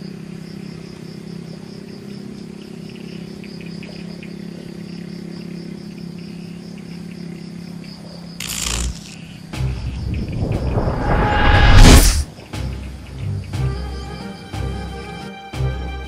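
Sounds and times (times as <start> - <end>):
insects chirping: 0.0 - 16.0
low hum: 8.4 - 14.8
loud whoosh: 9.6 - 12.3
rushing noise: 9.6 - 12.3.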